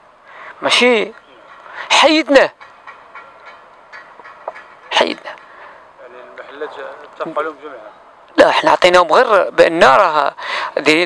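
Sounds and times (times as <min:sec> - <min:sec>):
faint outdoor background noise: 0:00.0 - 0:11.0
man speaking: 0:06.0 - 0:11.0.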